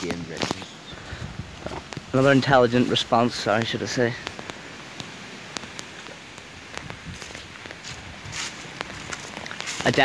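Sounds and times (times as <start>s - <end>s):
clothing rustling on microphone: 4.1s - 10.0s.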